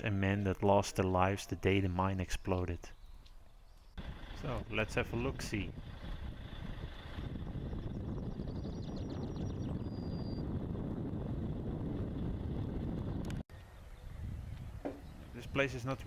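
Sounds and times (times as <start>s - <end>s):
wind buffeting microphone: 3.9s - 16.0s.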